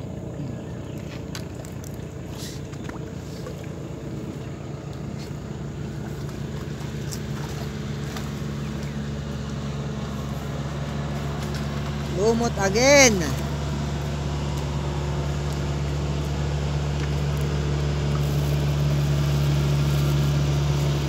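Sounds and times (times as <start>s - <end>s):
distant engine drone: 0.0s - 21.0s.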